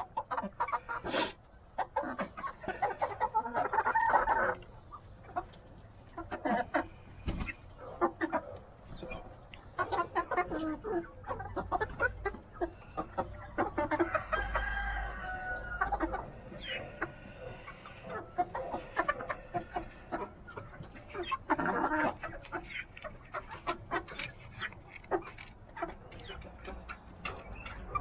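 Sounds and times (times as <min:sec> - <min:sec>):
chickens clucking: 0:00.0 - 0:28.0
chicken drawn-out call: 0:06.2 - 0:26.0.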